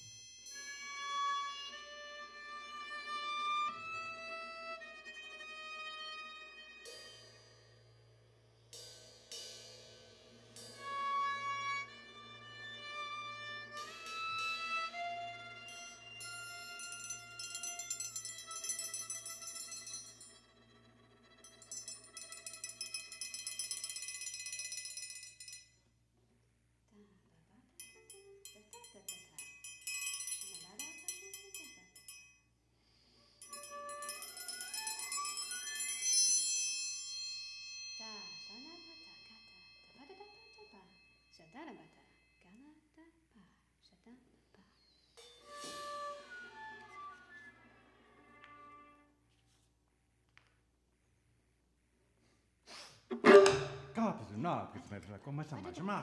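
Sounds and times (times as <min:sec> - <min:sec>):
high trembling viola: 0:00.5 - 0:07.1, 0:10.8 - 0:23.7, 0:33.4 - 0:36.3, 0:45.2 - 0:49.2
tapped and struck percussion: 0:06.7 - 0:25.7, 0:27.8 - 0:32.4, 0:33.4 - 0:42.3, 0:45.2 - 0:47.2, 0:53.1 - 0:54.2.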